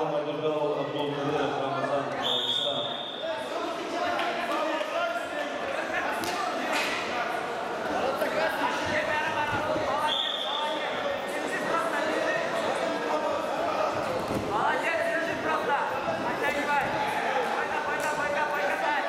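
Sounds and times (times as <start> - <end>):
referee's whistle blasts: 2.2 - 3.3, 10.0 - 10.8.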